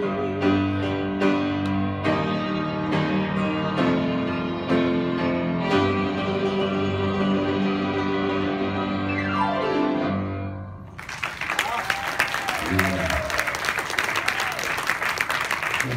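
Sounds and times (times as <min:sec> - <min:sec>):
piano and violin music: 0:00.0 - 0:10.6
audience applause: 0:10.9 - 0:15.9.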